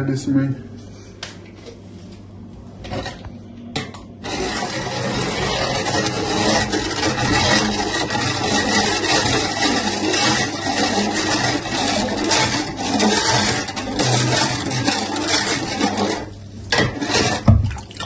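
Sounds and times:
liquid stirred scraping pot: 4.2 - 18.0.

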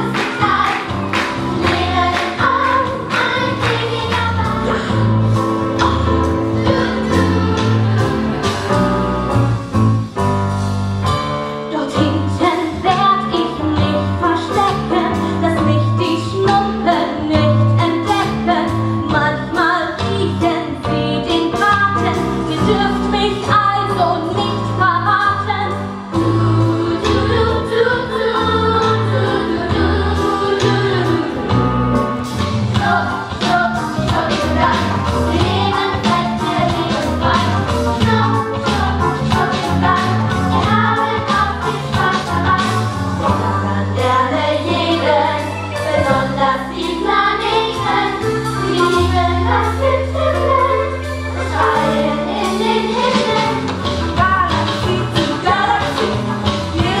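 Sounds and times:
young voices singing in unison: 0.0 - 5.2, 5.8 - 8.7, 26.2 - 31.7, 32.8 - 53.7
instrumental accompaniment with bass: 0.0 - 57.0.

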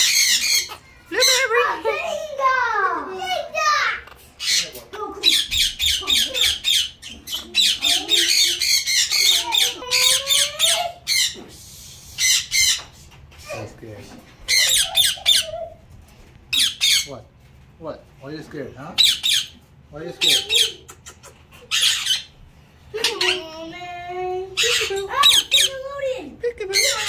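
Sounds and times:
parrots squawking: 0.0 - 13.7, 14.4 - 15.9, 16.5 - 17.2, 18.9 - 23.8, 24.4 - 27.0.

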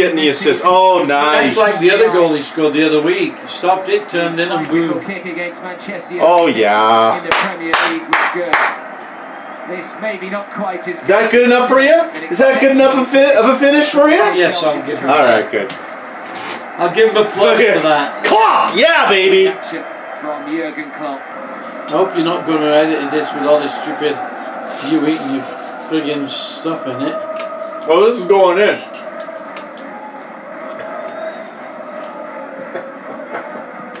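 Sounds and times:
stadium crowd murmur: 0.0 - 34.0
man clapping hands: 7.2 - 8.8.

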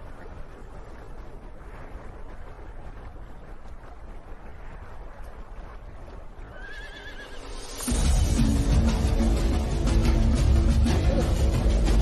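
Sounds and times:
horse whinnying: 6.5 - 7.5.

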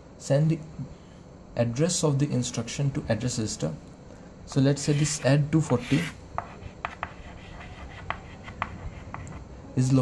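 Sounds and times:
chalk scratching on blackboard: 4.8 - 9.5.

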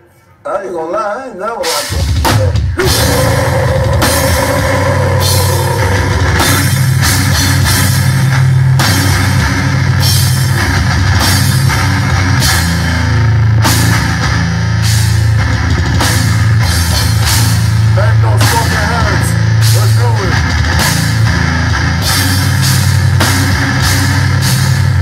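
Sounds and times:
heavy metal band playing live: 1.6 - 25.0.

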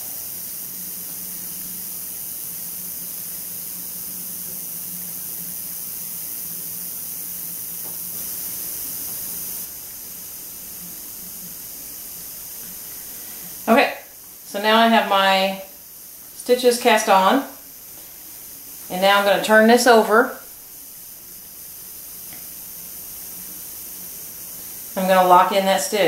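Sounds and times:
steady background hiss: 0.0 - 26.0.

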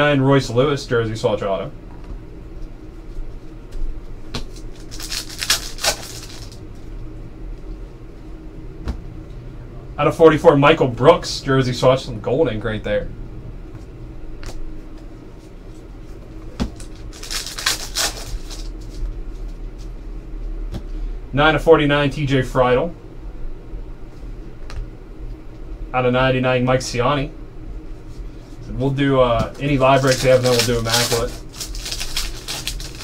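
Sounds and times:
cards shuffled by hand: 4.3 - 6.6, 14.4 - 19.9, 29.5 - 33.0.

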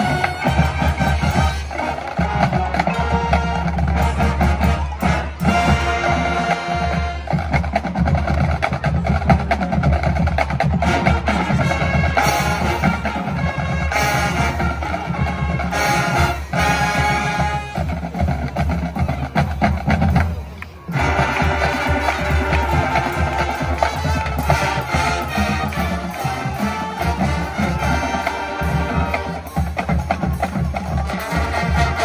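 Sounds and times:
marching band playing: 0.0 - 32.0.

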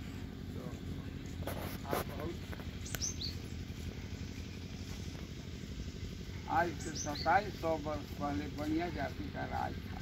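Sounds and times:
low outdoor rumble: 0.0 - 10.0
high falling bird chirps: 2.8 - 7.7.

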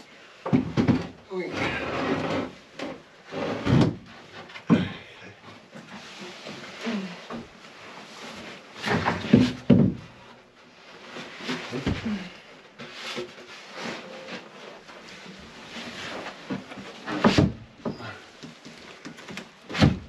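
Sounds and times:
wooden panel scraping: 0.7 - 4.6, 12.8 - 20.0.

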